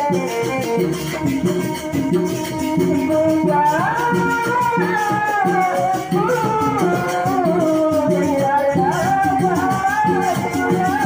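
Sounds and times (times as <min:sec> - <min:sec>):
traditional dance music: 0:00.0 - 0:11.0.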